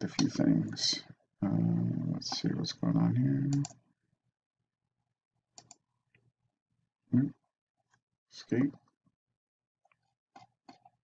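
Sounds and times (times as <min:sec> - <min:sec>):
computer mouse clicks: 0:03.5 - 0:03.8, 0:05.5 - 0:05.8.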